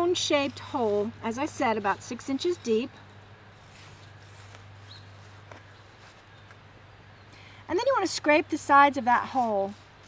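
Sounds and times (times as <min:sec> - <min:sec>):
trowel scraping dry soil: 0:00.0 - 0:02.9, 0:03.5 - 0:06.3
steady low hum: 0:00.0 - 0:10.0.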